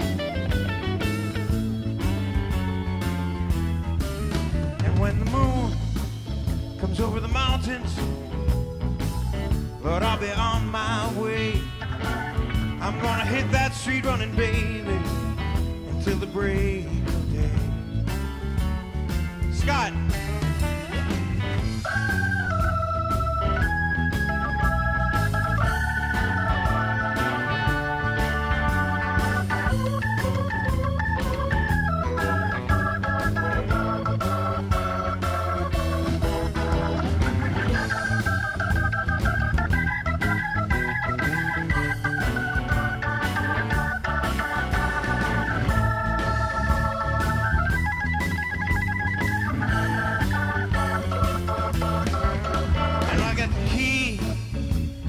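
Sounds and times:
bass playing: 0:00.0 - 0:55.0
drums playing: 0:00.0 - 0:55.0
organ blues solo: 0:00.0 - 0:55.0.

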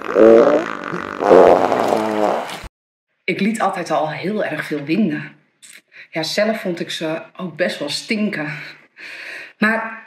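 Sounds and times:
long wavering fart: 0:00.0 - 0:02.7.

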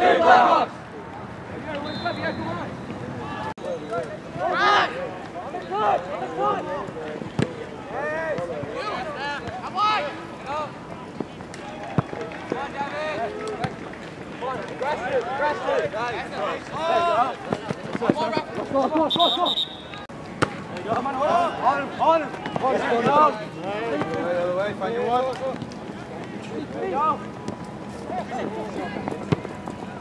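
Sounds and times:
players shouting: 0:00.0 - 0:00.8, 0:14.8 - 0:20.1
short high whistle blast: 0:19.1 - 0:20.0.

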